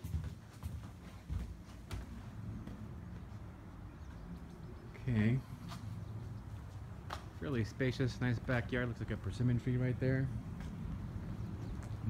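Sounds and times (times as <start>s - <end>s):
footsteps: 0.0s - 4.3s, 5.4s - 7.6s, 10.3s - 12.0s.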